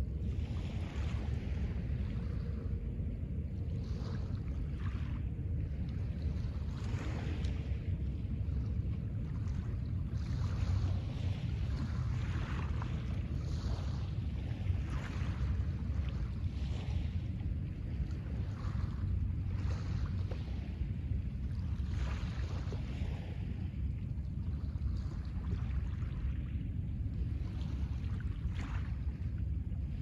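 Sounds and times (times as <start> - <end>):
wind rumbling on microphone: 0.0 - 30.0.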